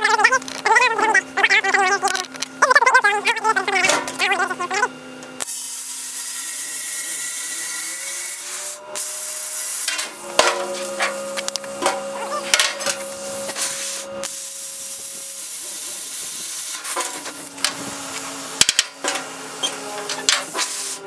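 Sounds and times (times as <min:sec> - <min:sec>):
plasma cutter hissing: 0:08.4 - 0:21.0.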